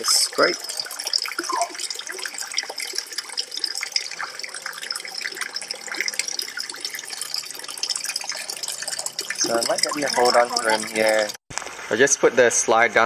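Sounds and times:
water splashing into pond: 0.0 - 12.0.

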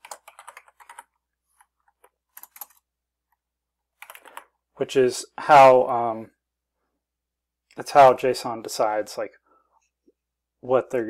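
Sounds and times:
computer keyboard typing: 0.0 - 2.9, 4.0 - 4.5.

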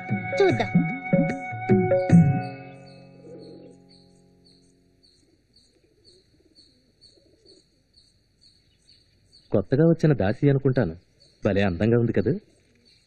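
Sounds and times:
sustained film music notes: 0.0 - 5.2.

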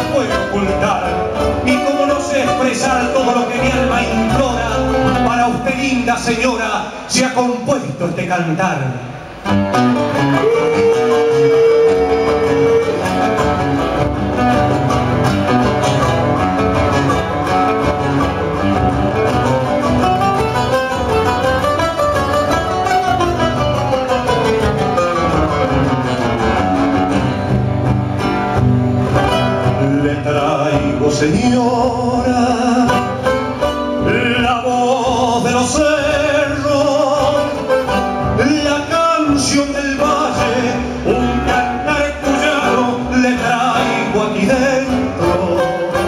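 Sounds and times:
acoustic guitars playing folk music: 0.0 - 46.0.

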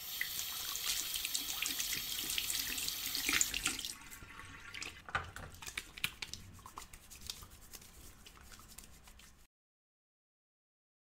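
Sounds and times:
tap running into sink: 4.8 - 5.8.

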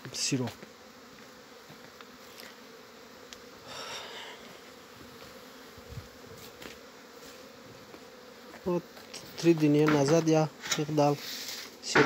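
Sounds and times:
honeybees buzzing: 0.0 - 12.0.

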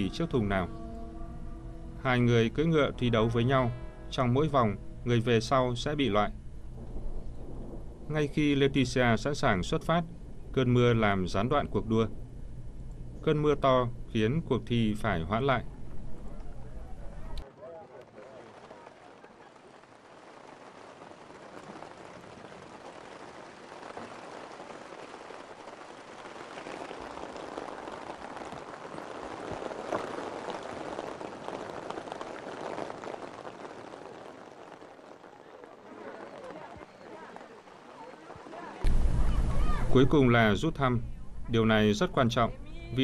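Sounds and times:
heavy rain falling: 0.0 - 43.0.

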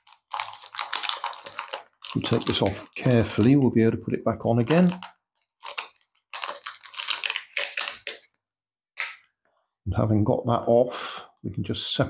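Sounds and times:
plastic film crinkling: 0.0 - 3.8, 4.6 - 8.3.

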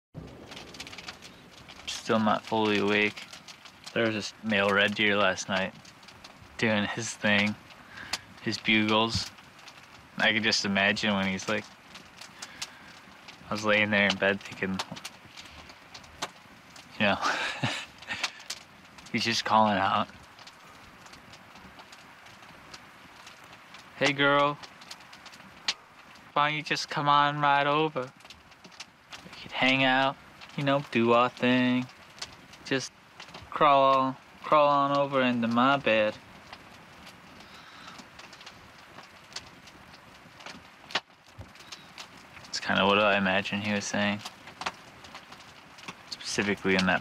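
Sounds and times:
light ticks: 0.2 - 26.8, 28.0 - 47.0
background hiss: 0.2 - 47.0.

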